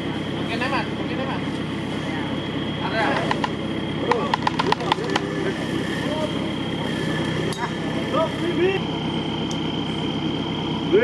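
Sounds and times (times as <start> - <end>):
engine idling: 0.0 - 11.0
sharp clicks: 3.2 - 5.3.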